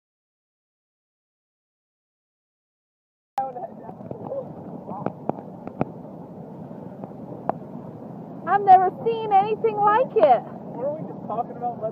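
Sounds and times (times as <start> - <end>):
steady rushing noise: 3.4 - 11.9.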